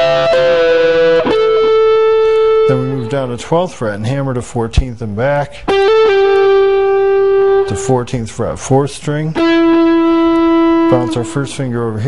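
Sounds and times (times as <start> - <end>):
electric guitar lead notes: 0.0 - 3.8, 5.6 - 8.1, 9.3 - 12.0.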